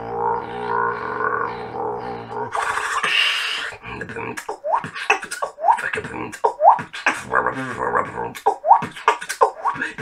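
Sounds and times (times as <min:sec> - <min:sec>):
beatboxer vocal drone: 0:00.0 - 0:10.0.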